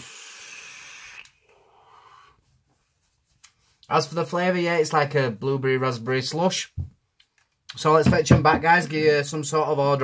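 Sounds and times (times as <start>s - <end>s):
faint breath out: 1.4s - 2.5s.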